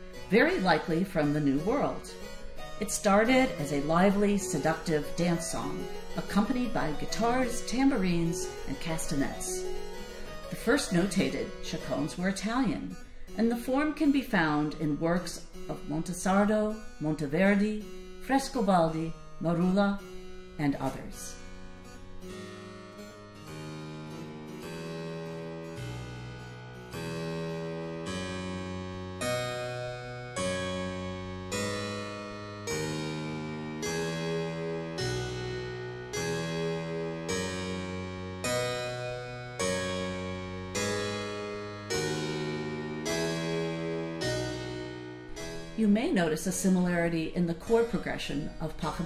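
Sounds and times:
harpsichord playing chords: 0:00.0 - 0:49.0.

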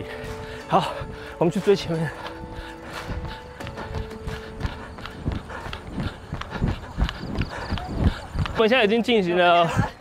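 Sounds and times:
background music: 0:00.0 - 0:07.6
running footsteps on pavement: 0:00.0 - 0:10.0.

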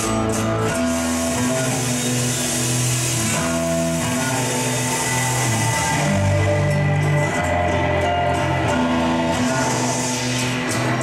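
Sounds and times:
acoustic guitar strumming: 0:00.0 - 0:11.0
low bass notes: 0:00.0 - 0:11.0.

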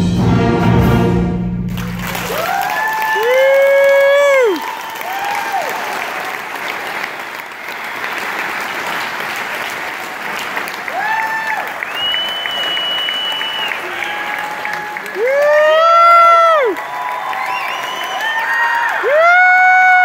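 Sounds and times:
audience applauding: 0:01.7 - 0:20.0
shouted cheers: 0:01.9 - 0:06.8, 0:10.8 - 0:20.0
long high whistle: 0:11.9 - 0:14.2, 0:17.4 - 0:18.5.

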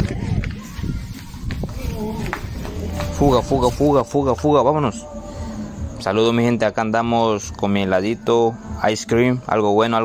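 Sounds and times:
running footsteps on hard floor: 0:00.0 - 0:03.7.

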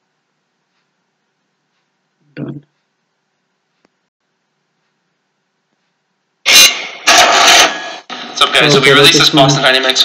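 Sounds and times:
loud horn-like blast: 0:06.5 - 0:08.0.

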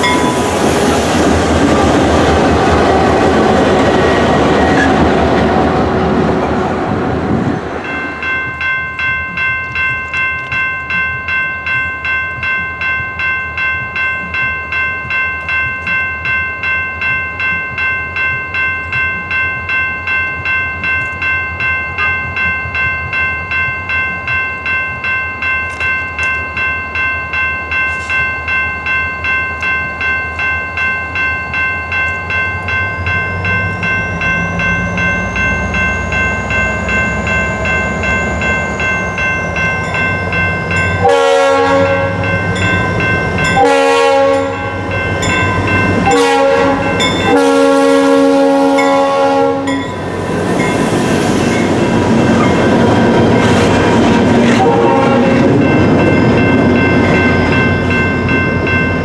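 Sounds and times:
diesel locomotive engines rumbling: 0:00.0 - 0:59.0
locomotive bell ringing: 0:00.0 - 0:59.0
locomotive horn: 0:41.0 - 0:42.3, 0:43.6 - 0:44.9, 0:46.0 - 0:49.8, 0:54.4 - 0:55.5.

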